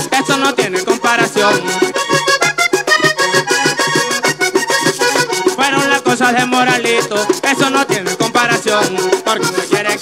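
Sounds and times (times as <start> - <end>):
button accordion playing: 0.0 - 10.0
percussion steady beat: 0.0 - 10.0.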